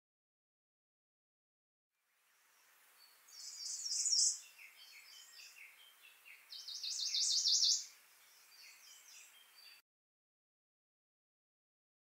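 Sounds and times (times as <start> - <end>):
soft bird chirps: 2.3 - 9.8
songbird trilling: 3.0 - 9.8.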